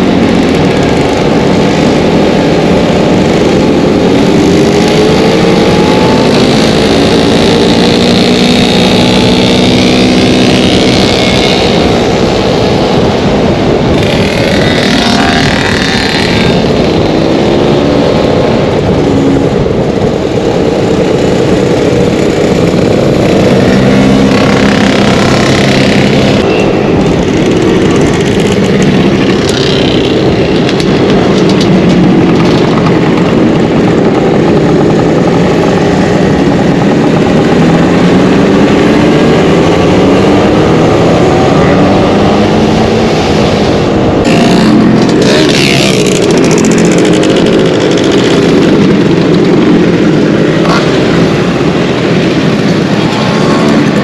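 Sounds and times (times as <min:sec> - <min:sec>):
scooter engines droning: 0:00.0 - 0:54.0
wind and road noise: 0:00.0 - 0:54.0.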